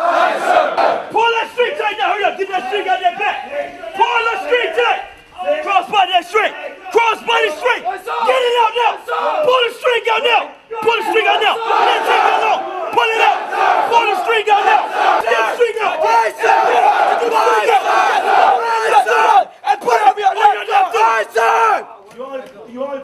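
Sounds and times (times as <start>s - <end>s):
recruits shouting back: 0.0s - 22.0s
men yelling commands: 0.8s - 22.0s.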